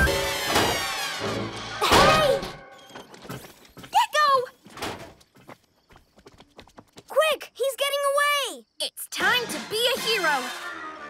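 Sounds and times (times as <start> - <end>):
cartoon footsteps clicking: 3.0 - 8.0.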